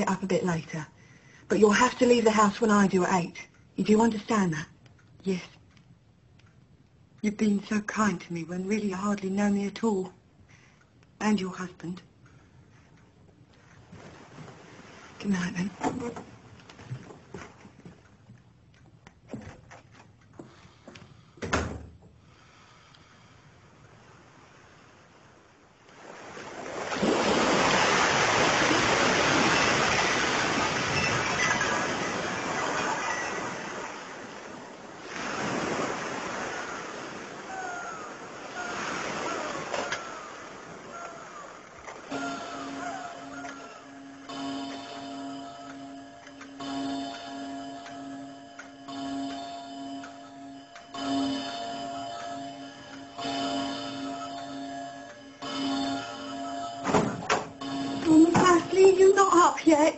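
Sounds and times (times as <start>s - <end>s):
sea surf washing: 13.9s - 15.6s, 23.8s - 59.9s
seagulls crying: 30.4s - 34.4s, 35.3s - 44.3s, 51.6s - 58.1s
music of sustained chords: 42.1s - 58.3s.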